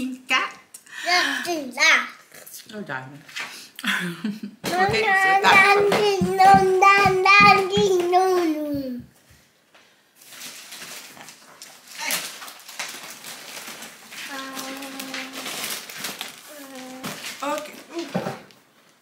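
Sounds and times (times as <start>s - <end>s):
rustling: 10.2s - 19.0s.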